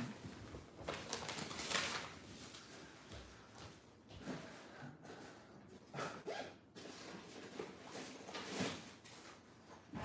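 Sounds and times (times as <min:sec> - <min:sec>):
rustling and scraping handling noises: 0:06.7 - 0:10.0.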